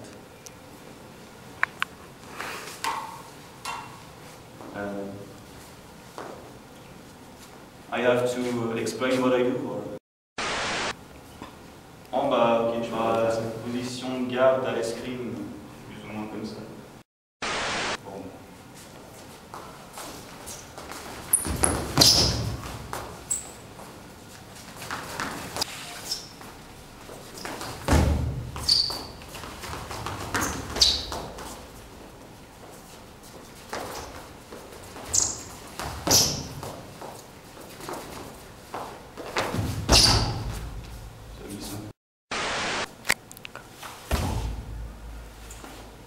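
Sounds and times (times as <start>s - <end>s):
sneakers squeaking on floor: 19.0s - 41.0s
footstep thud: 27.1s - 31.7s, 44.1s - 45.8s.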